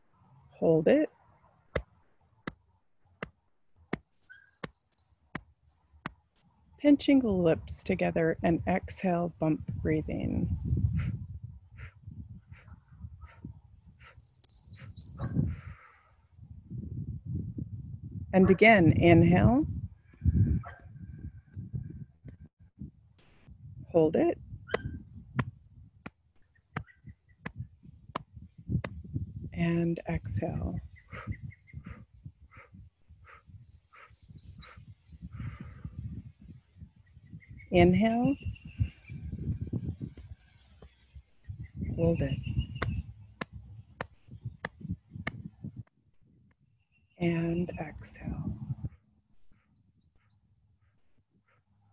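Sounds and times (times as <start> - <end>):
bird trilling: 4.1 - 5.1
breath puffing through lips: 31.1 - 36.2.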